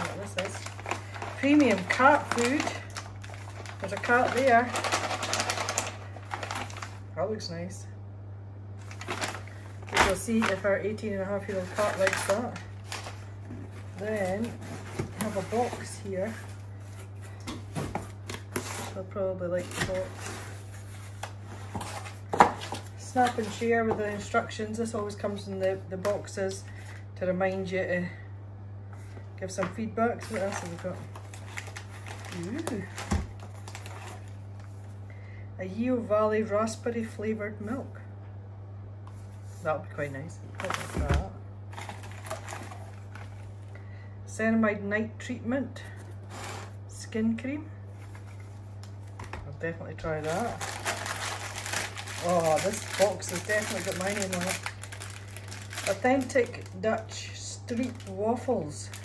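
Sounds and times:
packing filler rustling: 0.0s - 7.0s, 8.8s - 10.7s, 11.3s - 17.2s, 30.2s - 34.9s, 41.7s - 43.7s, 50.2s - 56.7s
plastic bag crinkling: 0.0s - 7.1s, 8.8s - 17.2s, 30.2s - 34.9s, 40.6s - 43.7s, 50.2s - 59.0s
steady low hum: 0.0s - 59.0s.

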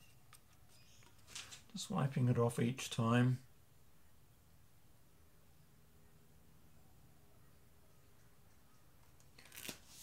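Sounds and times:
card scraping and clicking: 9.2s - 10.0s.

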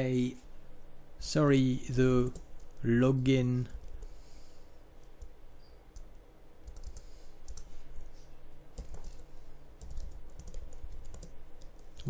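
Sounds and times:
computer keyboard typing: 2.2s - 2.9s, 3.7s - 4.1s, 5.9s - 7.7s, 8.7s - 12.0s.

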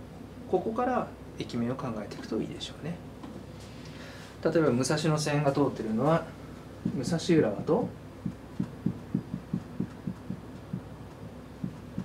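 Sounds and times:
faint room hum: 0.0s - 12.0s
soft low thumps: 6.8s - 12.0s.

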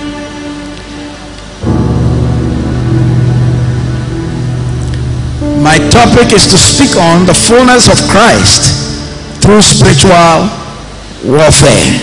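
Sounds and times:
sustained keyboard chords: 0.0s - 11.2s
noisy wash: 0.0s - 12.0s
loud low bass chord: 1.6s - 11.1s.

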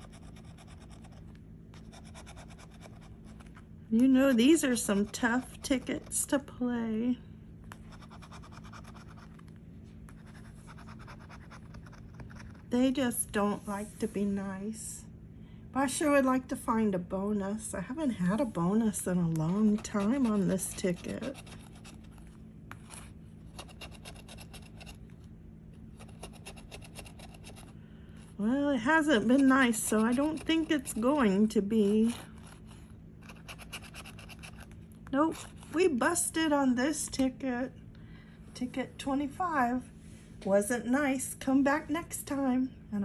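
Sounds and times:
scratching lottery ticket coating: 0.0s - 6.2s, 7.8s - 9.5s, 19.4s - 25.0s, 25.9s - 27.7s, 28.9s - 36.0s.

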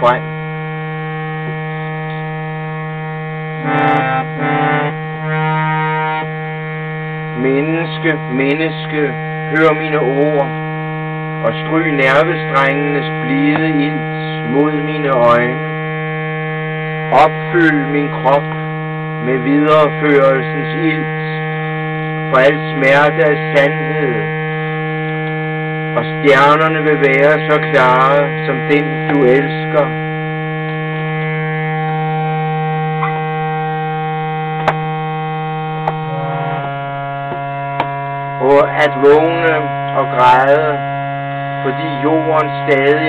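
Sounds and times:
man reciting: 0.0s - 0.2s, 7.4s - 10.5s, 11.4s - 15.6s, 17.1s - 18.5s, 19.2s - 21.4s, 22.3s - 24.3s, 26.0s - 29.9s, 38.4s - 40.9s, 41.6s - 43.0s
harmonium drone chord: 0.0s - 43.0s.

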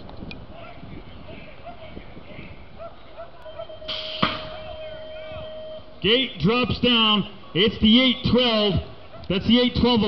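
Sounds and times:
faint voices: 0.5s - 5.9s
steady electronic tone: 3.6s - 6.0s
starting gate slamming: 3.9s - 4.7s.

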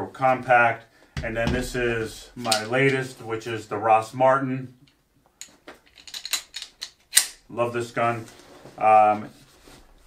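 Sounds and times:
pistol handling clicks and knocks: 5.4s - 7.4s.

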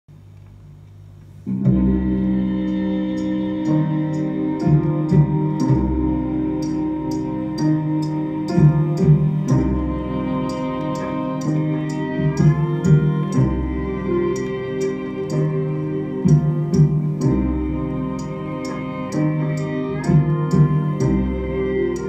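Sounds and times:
sustained low notes: 1.3s - 22.0s
high percussion ticking: 2.5s - 22.0s.

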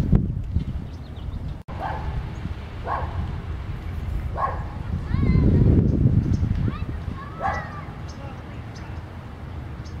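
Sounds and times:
wind rumble on microphone: 0.0s - 10.0s
dog barking: 1.8s - 2.2s, 2.8s - 3.2s, 4.3s - 4.8s, 7.4s - 7.8s.

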